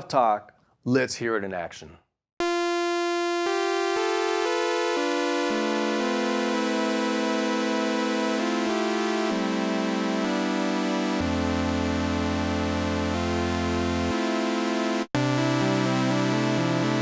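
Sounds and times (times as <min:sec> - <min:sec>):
analog synthesizer chords: 0:02.4 - 0:17.0.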